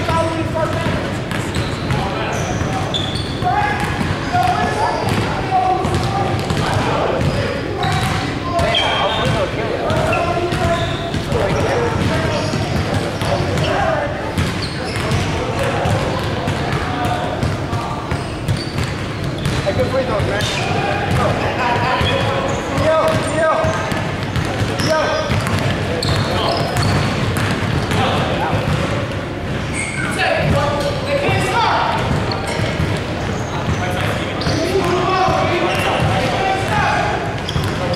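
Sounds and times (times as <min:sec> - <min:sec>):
people talking and calling out: 0:00.0 - 0:37.9
basketball bouncing on hardwood: 0:14.4 - 0:17.6, 0:22.8 - 0:28.9.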